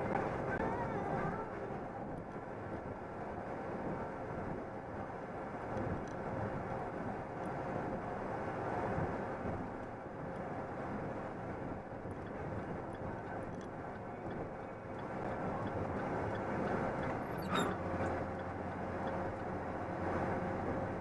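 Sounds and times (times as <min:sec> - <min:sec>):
truck engine and tyres droning: 0:00.0 - 0:21.0.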